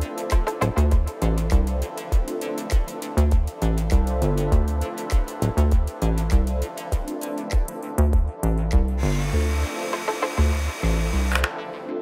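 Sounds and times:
background music with steady beat: 0:00.0 - 0:12.0
cordless drill driving screw: 0:09.0 - 0:11.6.

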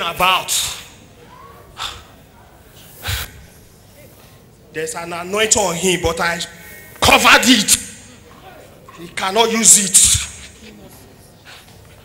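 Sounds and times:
man's forceful breath into microphone: 0:02.8 - 0:03.6.

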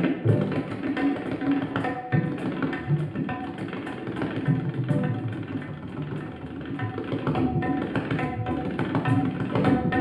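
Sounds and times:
acoustic string instruments: 0:00.0 - 0:10.0
tabla playing fast strokes: 0:00.0 - 0:10.0.

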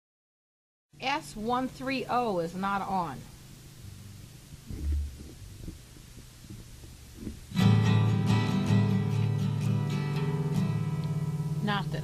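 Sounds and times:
guitar strumming chords: 0:07.5 - 0:12.0.

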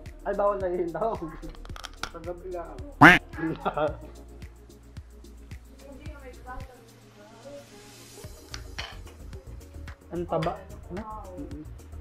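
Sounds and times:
background music with light beat: 0:00.0 - 0:12.0.

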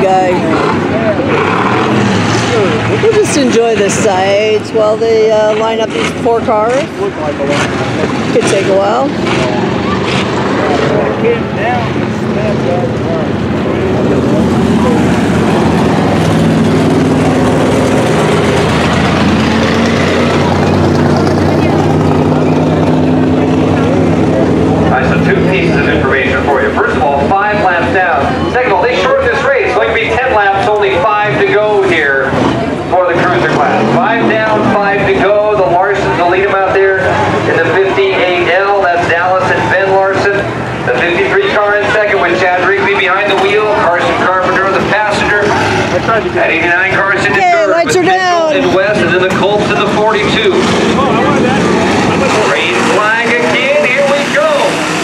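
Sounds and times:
voices: 0:00.0 - 0:16.5, 0:17.1 - 0:54.8
race car engines droning: 0:00.0 - 0:55.0.

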